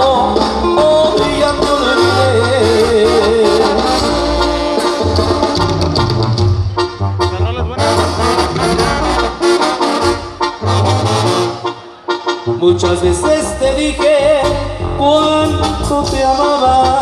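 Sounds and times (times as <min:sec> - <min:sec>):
trumpets and trombones playing: 0:00.0 - 0:17.0
pulsing low bass line: 0:12.5 - 0:17.0.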